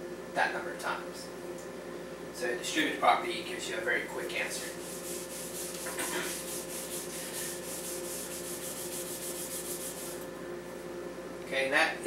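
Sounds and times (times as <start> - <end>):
eraser scrubbing whiteboard: 4.4 - 10.2.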